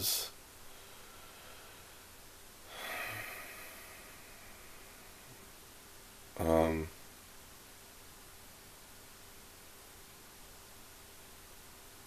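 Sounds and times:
man breathing: 0.6 - 5.4.

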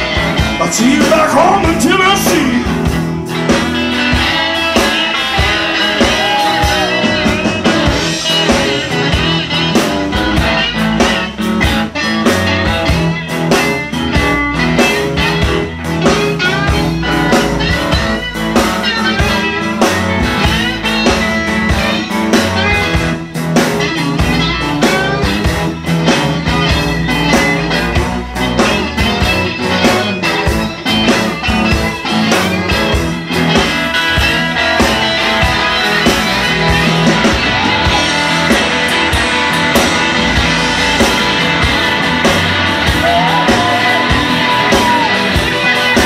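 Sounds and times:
drums: 0.0 - 46.0
electric bass: 0.0 - 46.0
electric guitar lead with bends: 0.0 - 46.0.

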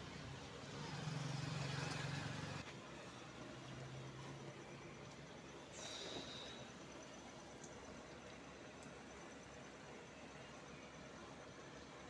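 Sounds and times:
vehicle engine humming: 0.0 - 7.1.

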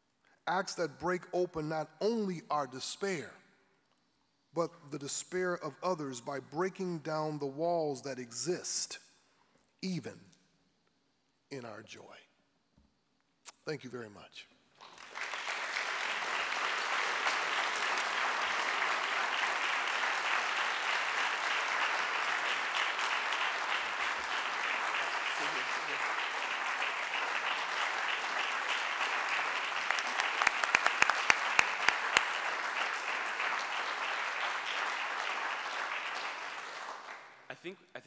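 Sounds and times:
audience applauding: 14.8 - 37.3
sharp claps close to microphone: 14.8 - 37.4.

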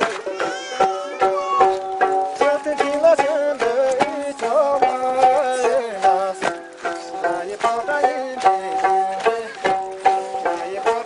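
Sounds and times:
folk dance music melody: 0.0 - 11.0.

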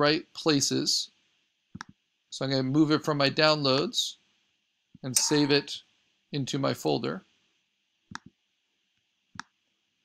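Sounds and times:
computer mouse clicks: 1.8 - 2.0.

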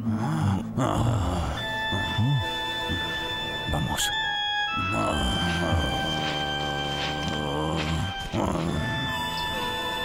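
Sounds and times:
background music: 0.0 - 10.0
animal grunting: 4.8 - 9.4.

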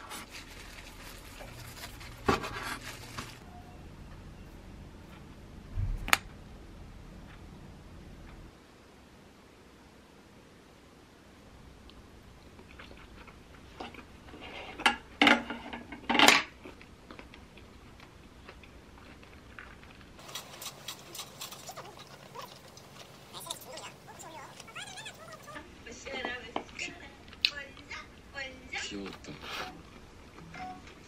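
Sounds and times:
person eating: 12.4 - 14.8, 16.6 - 25.6
faint voices: 21.4 - 26.2.

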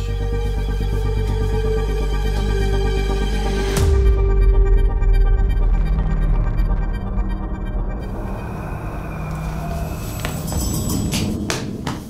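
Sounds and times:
droning electronic music: 0.0 - 12.0
low rumble: 0.0 - 12.0.

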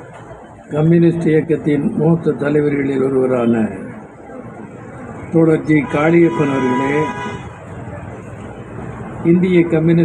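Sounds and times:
road traffic hum: 3.8 - 10.0.

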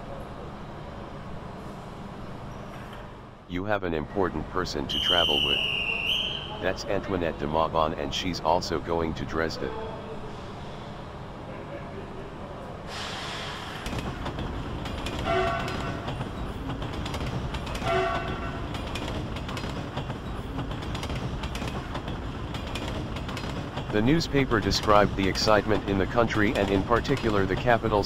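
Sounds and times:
train rolling rumble: 0.0 - 28.0
train horn toots: 15.2 - 16.1, 17.8 - 18.6.

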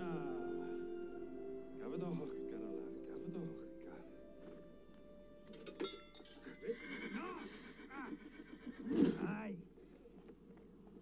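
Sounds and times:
horse neighing: 6.4 - 9.2.

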